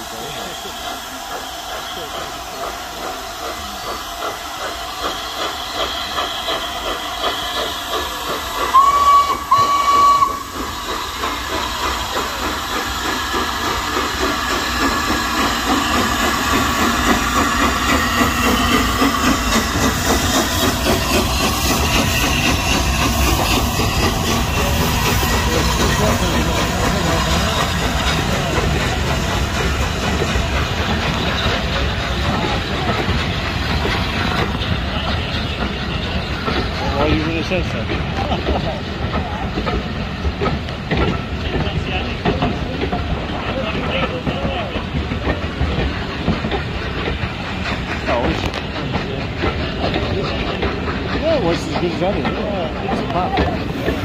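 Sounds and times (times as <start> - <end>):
steam hiss: 0.0 - 54.0
train rumbling past: 0.0 - 54.0
steam locomotive whistle: 5.0 - 10.8.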